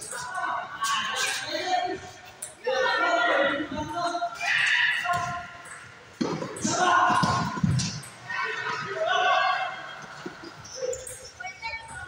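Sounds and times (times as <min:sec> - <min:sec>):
indistinct voices in echoing hall: 0:00.0 - 0:12.0.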